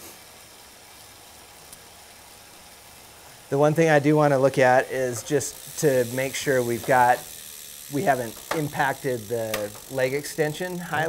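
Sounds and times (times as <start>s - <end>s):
faint room tone hiss: 0.0s - 11.0s
small tick: 1.7s - 1.9s.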